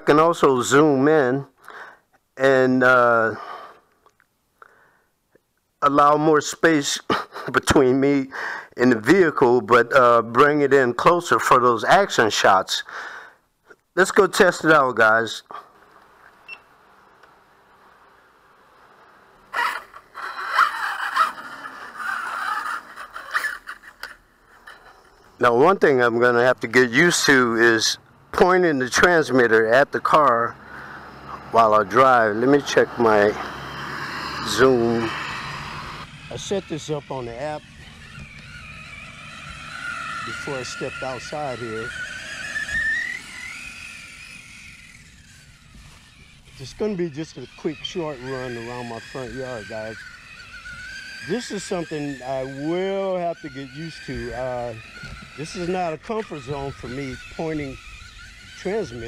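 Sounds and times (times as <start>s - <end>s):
toy truck motor whine: 15.6s - 59.0s
tyres on grass: 34.4s - 59.0s.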